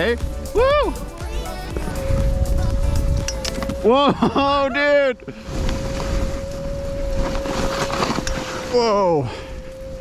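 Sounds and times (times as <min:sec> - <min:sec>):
background music steady note: 0:00.0 - 0:07.2
wind rumble on microphone: 0:01.6 - 0:10.0.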